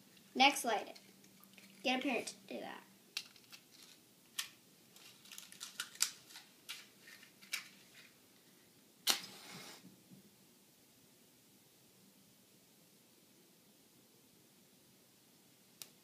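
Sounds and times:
matches clicking and scraping: 0:03.2 - 0:08.1
match struck and flaring: 0:09.0 - 0:09.8.

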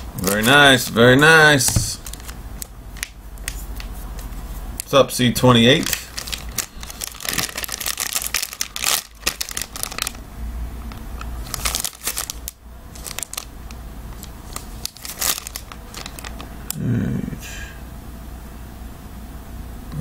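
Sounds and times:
cards rustling: 0:01.6 - 0:10.2, 0:10.9 - 0:13.5, 0:14.1 - 0:16.5
foil wrapper crinkling and tearing: 0:02.0 - 0:10.2, 0:11.0 - 0:16.5.

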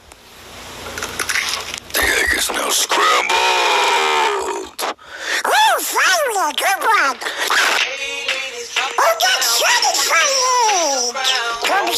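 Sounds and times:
raspy quacking voice impression: 0:02.0 - 0:04.8.

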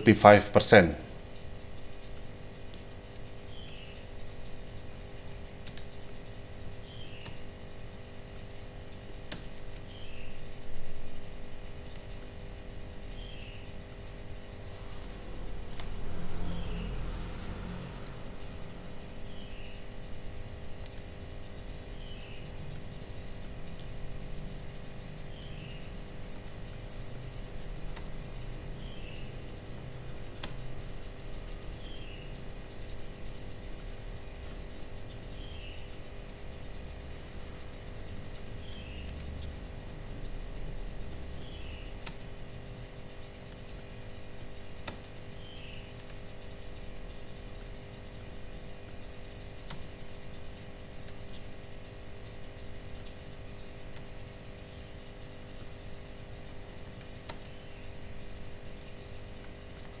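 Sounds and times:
electrical hum: 0:00.0 - 1:00.0
computer mouse clicks: 0:05.6 - 0:06.0, 0:07.2 - 0:07.4, 0:09.3 - 0:09.9, 0:11.8 - 0:12.2, 0:20.8 - 0:21.1, 0:26.3 - 0:26.6, 0:30.4 - 0:30.7, 0:38.6 - 0:39.6, 0:44.8 - 0:45.2, 0:46.0 - 0:46.2, 0:56.8 - 0:57.6.

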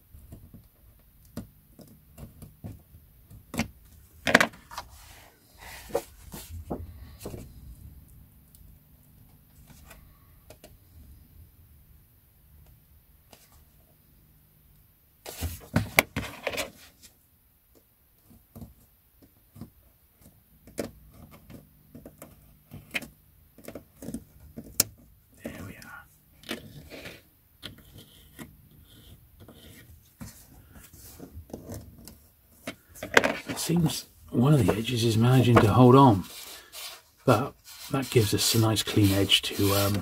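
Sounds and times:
small clicks and taps: 0:00.2 - 0:03.6
person speaking: 0:25.4 - 0:26.1, 0:33.1 - 0:40.0
paper rustling: 0:26.4 - 0:40.0
scalpel scraping book spine: 0:35.4 - 0:40.0.

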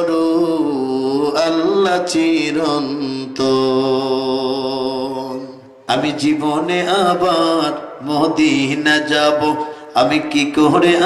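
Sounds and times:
man singing unaccompanied: 0:00.0 - 0:11.0.

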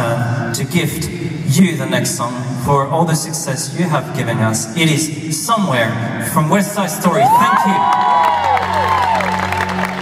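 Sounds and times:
high whoops: 0:07.1 - 0:09.9
audience cheering and applauding: 0:07.1 - 0:10.0.

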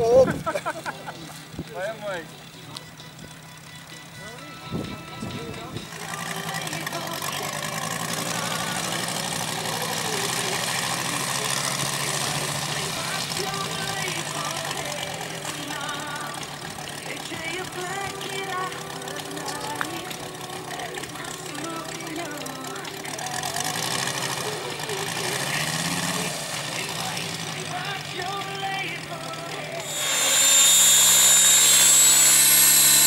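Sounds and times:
model plane engine idling: 0:00.0 - 0:33.0
voices: 0:00.0 - 0:33.0
music: 0:00.9 - 0:33.0.

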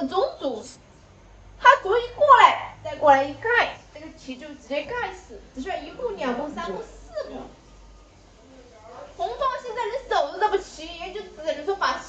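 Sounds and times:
woman's voice: 0:01.6 - 0:07.6, 0:09.2 - 0:12.0.

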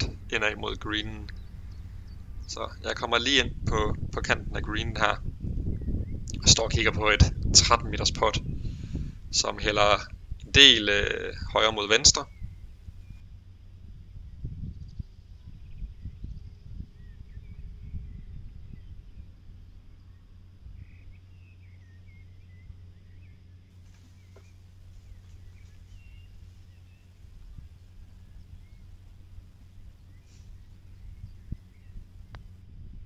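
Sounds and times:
wind rumbling on microphone: 0:00.0 - 0:33.0
faint bird chirps: 0:14.1 - 0:32.5.

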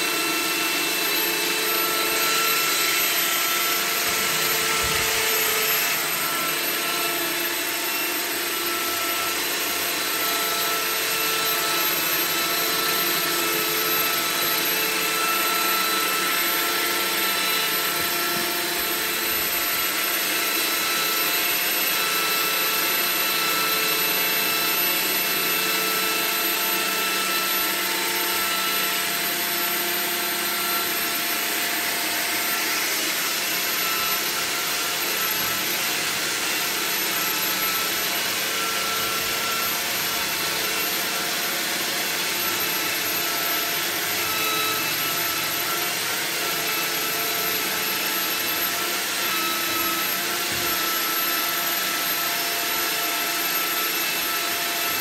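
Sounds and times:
electric drill spinning drain cable: 0:00.0 - 0:55.0.

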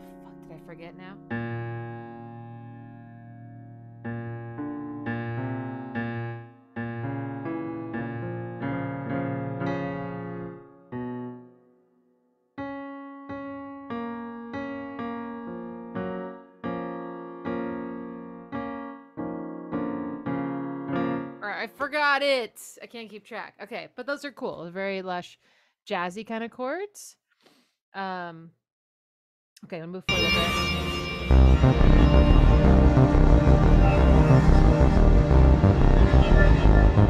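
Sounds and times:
digital piano jazzy chords: 0:00.0 - 0:11.6, 0:12.6 - 0:21.4, 0:30.1 - 0:37.0.

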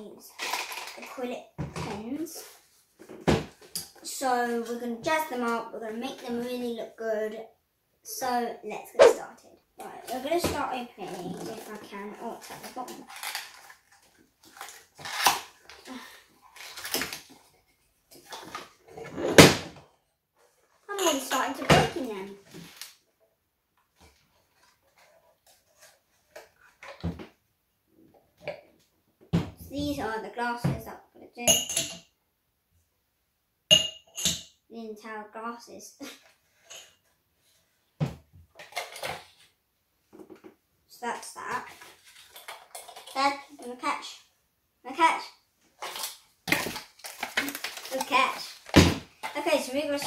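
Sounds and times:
packaging rustling: 0:12.4 - 0:15.7, 0:45.8 - 0:48.8
glasses knocking and clinking: 0:31.5 - 0:32.1, 0:33.7 - 0:34.5.

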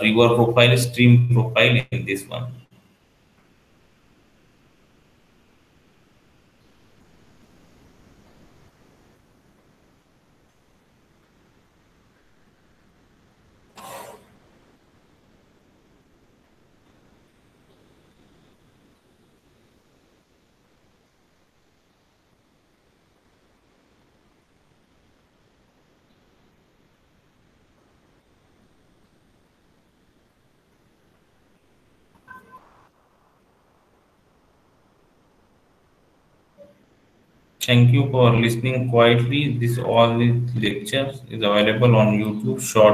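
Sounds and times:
faint room hiss: 0:00.0 - 0:42.9
short cough: 0:13.8 - 0:14.3
electronic beep: 0:32.2 - 0:32.8
faint electronic blip: 0:32.2 - 0:32.9, 0:36.6 - 0:36.8.

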